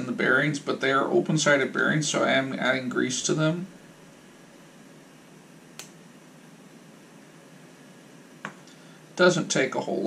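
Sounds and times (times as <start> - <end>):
faint room hiss: 0.0 - 10.0
small click: 5.8 - 6.0.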